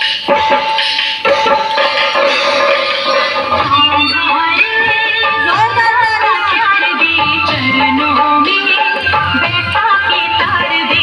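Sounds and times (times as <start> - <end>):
dance song melody: 0.0 - 11.0
hand drum beats: 0.1 - 11.0.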